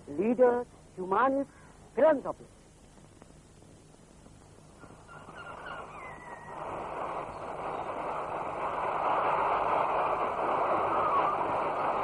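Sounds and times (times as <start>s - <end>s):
rushing noise: 5.8s - 12.0s.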